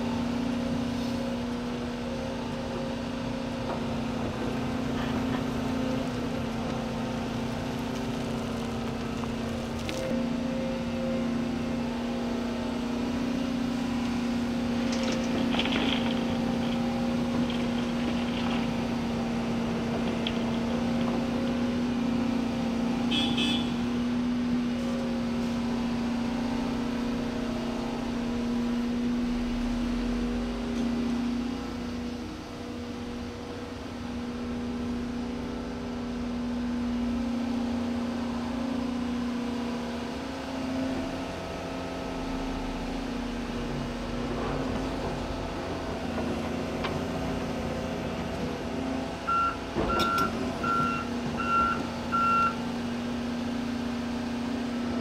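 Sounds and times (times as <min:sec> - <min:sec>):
excavator diesel engine running: 0:00.0 - 0:23.2, 0:24.0 - 0:55.0
reversing alarm beeping: 0:49.3 - 0:52.6.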